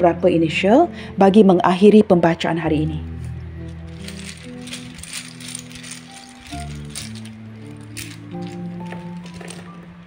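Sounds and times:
soft background music: 0.0s - 10.0s
letter pieces rattling in a bag: 3.7s - 9.8s.

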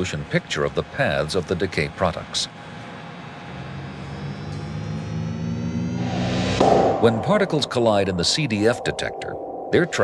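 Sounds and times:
synthesizer drone: 3.4s - 10.0s.

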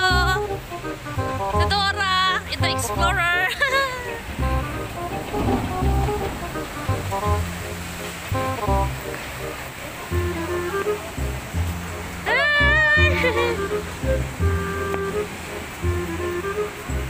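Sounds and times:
rushing water: 0.0s - 17.0s
music with bass beat: 4.3s - 9.3s, 10.1s - 17.0s.

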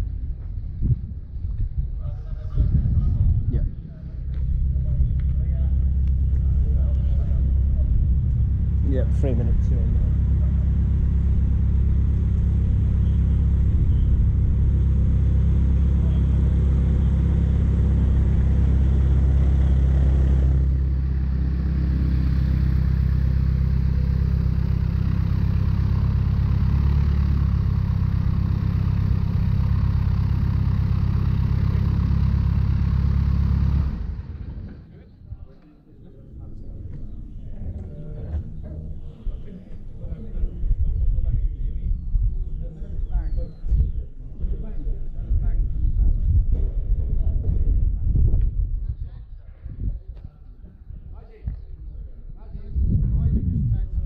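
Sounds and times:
aircraft piston engine idling: 3.7s - 35.6s.

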